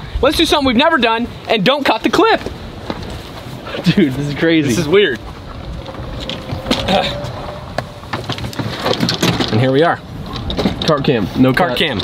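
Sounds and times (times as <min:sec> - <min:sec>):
golf cart and clubs clattering: 0:02.4 - 0:12.0
golf cart motor whine: 0:05.2 - 0:08.9.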